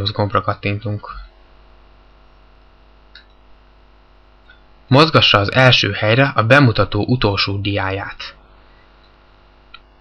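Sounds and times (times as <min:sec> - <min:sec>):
electrical mains hum: 0:00.0 - 0:10.0
faint click: 0:03.1 - 0:03.4.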